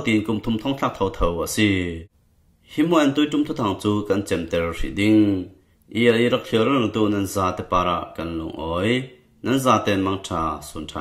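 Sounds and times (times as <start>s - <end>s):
person narrating: 0.0s - 11.0s.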